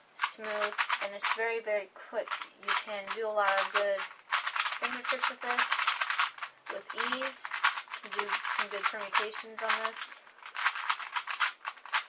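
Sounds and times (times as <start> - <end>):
puzzle cube clicking: 0.2 - 1.4, 2.2 - 12.0.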